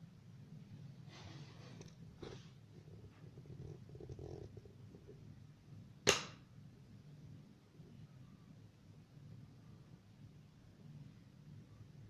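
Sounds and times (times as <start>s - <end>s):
low steady hum: 0.0s - 12.0s
faint movement sounds: 0.6s - 5.4s
sharp click or knock: 6.1s - 6.4s.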